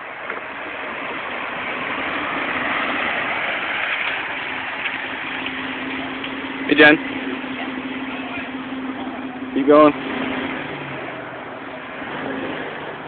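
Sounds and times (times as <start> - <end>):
off-road vehicle engine running: 0.0 - 13.0.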